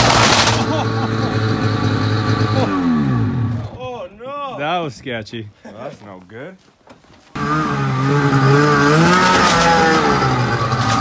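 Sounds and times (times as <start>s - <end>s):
snowmobile engine at high revs: 0.0s - 3.7s, 7.4s - 11.0s
snowmobile track throwing snow: 0.0s - 3.7s, 7.4s - 11.0s.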